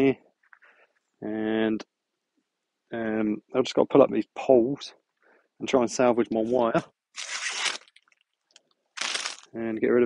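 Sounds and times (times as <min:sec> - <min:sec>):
soil and plant debris crunching: 0:09.0 - 0:09.5.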